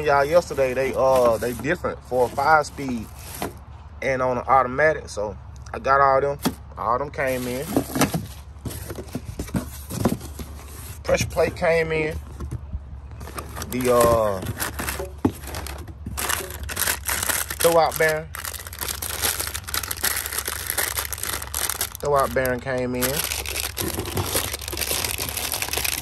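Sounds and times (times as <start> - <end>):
cardboard rustling: 0.0 - 3.6, 7.2 - 26.0
plastic wrap crinkling: 13.4 - 26.0.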